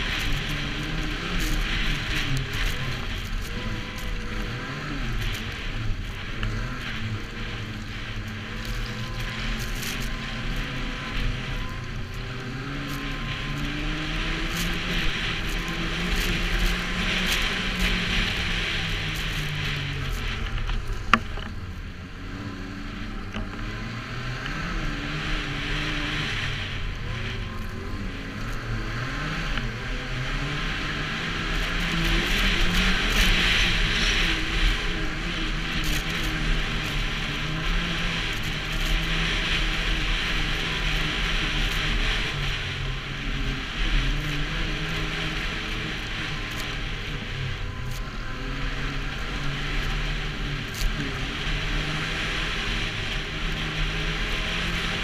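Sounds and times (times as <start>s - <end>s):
rush of wind and snow: 0.0s - 55.0s
snowmobile engine running: 0.0s - 55.0s.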